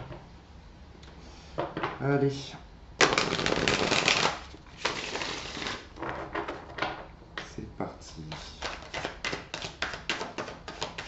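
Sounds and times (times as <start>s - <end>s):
card deck snapping: 3.0s - 5.8s
cards riffle-shuffled: 3.0s - 5.9s, 8.6s - 11.0s.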